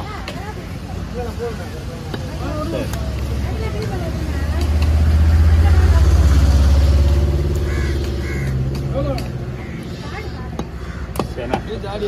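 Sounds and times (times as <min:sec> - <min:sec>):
voices talking: 0:00.0 - 0:12.0
vehicle engine running: 0:00.9 - 0:11.8.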